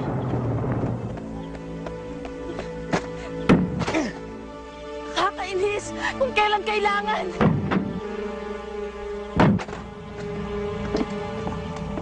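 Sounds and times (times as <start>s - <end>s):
film music with sustained tones: 0.0s - 12.0s
sharp thuds: 2.9s - 4.0s, 7.4s - 8.0s, 9.4s - 9.9s.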